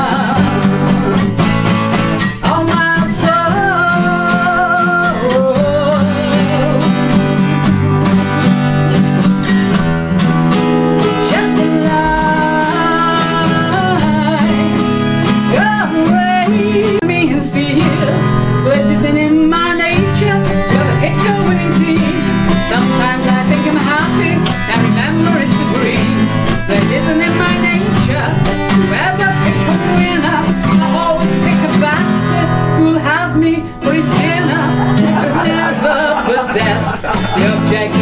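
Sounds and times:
woman singing: 0.0s - 7.7s, 11.0s - 38.0s
acoustic guitars: 0.0s - 38.0s.

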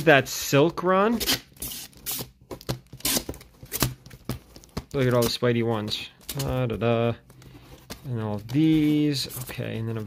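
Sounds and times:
plastic sleeves rustling and slapping: 2.5s - 10.0s.

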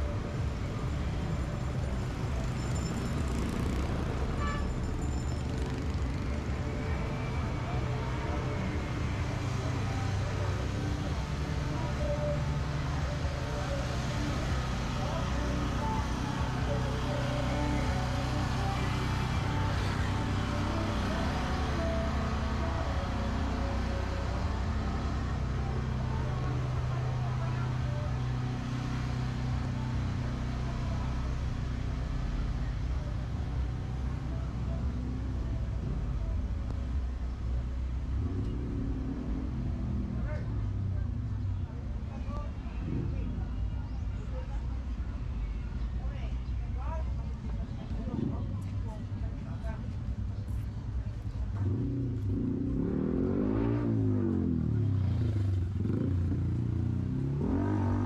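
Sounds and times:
vehicle engine running: 0.0s - 58.0s
people talking: 40.2s - 51.8s.

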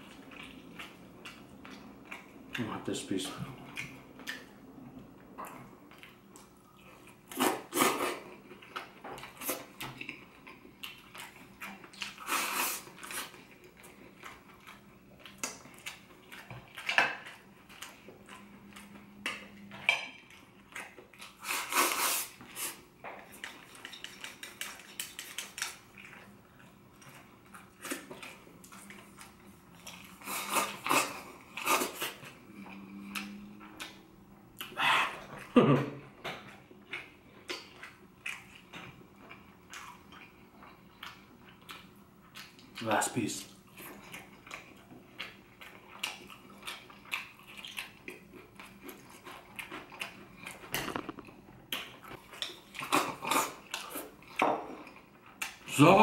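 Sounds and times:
biting and chewing crispy food: 36.5s - 55.7s.

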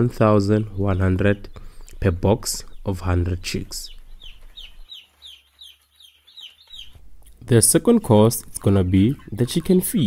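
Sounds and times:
chicks peeping: 0.0s - 10.0s.

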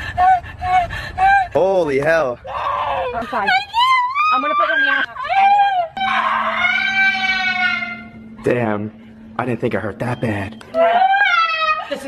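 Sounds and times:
steady low hum: 0.0s - 12.0s
woman wailing: 2.5s - 8.5s, 10.7s - 12.0s.

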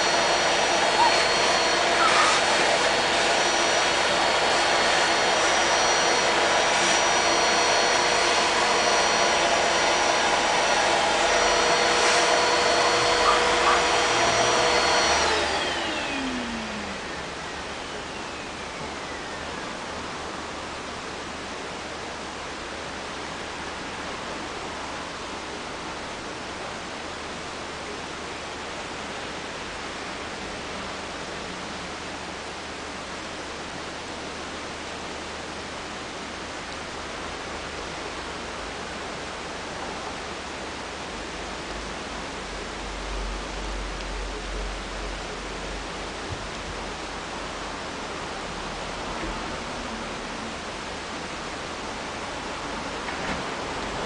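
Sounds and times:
appliance motor whining: 0.0s - 19.6s.

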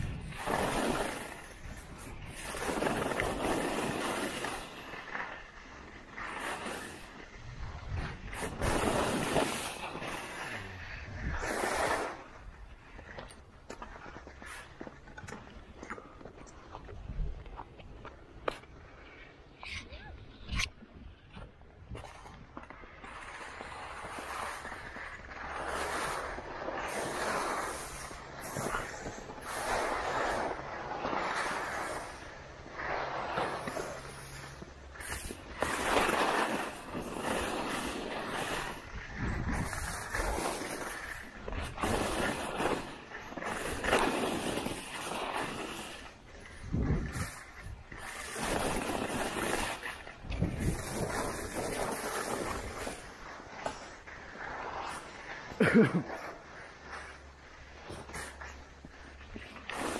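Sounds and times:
skis swishing on snow: 0.0s - 19.8s, 21.4s - 59.9s.

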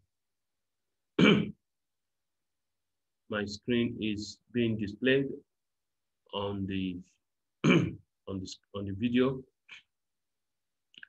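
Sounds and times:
man clearing throat: 1.2s - 1.6s, 7.6s - 8.0s.

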